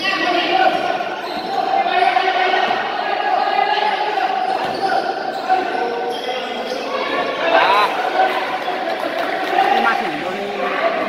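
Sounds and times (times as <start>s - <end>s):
voices of players and spectators: 0.0s - 11.0s
shoe squeak: 1.2s - 1.7s, 4.5s - 7.9s.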